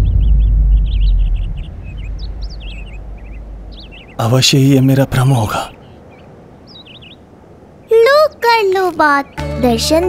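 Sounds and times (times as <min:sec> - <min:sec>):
high bird chirps: 0:00.0 - 0:09.5
low outdoor hiss: 0:00.8 - 0:10.0.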